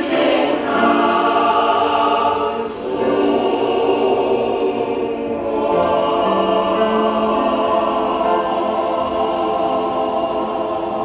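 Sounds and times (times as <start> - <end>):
choir singing a hymn: 0.0 - 11.0.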